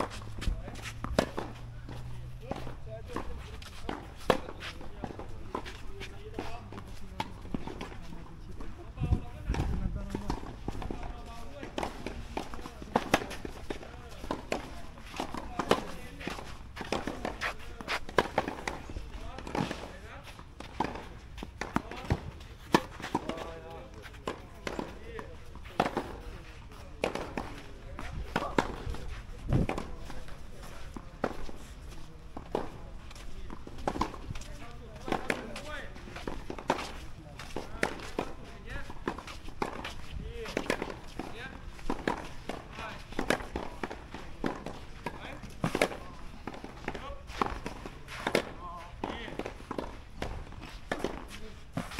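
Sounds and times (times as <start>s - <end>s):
tennis balls being struck: 0.0s - 8.8s, 9.4s - 31.6s, 32.2s - 51.9s
footsteps on pavement: 0.0s - 51.9s.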